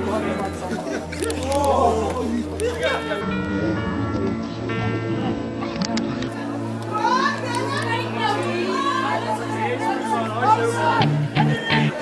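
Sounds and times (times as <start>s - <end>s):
steady low note and chords: 0.0s - 12.0s.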